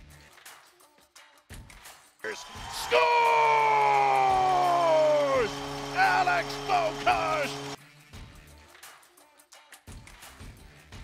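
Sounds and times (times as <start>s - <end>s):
announcer shouting: 2.2s - 7.8s
arena goal horn: 2.3s - 7.8s.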